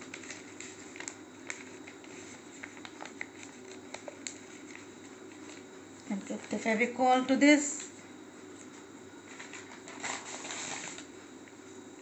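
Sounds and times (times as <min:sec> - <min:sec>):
newspaper rustling and crinkling: 0:00.0 - 0:06.8, 0:08.6 - 0:11.4.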